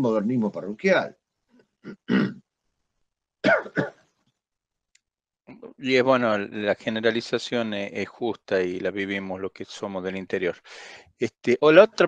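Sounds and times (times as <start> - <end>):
man coughing: 1.9 - 2.4, 3.4 - 3.9.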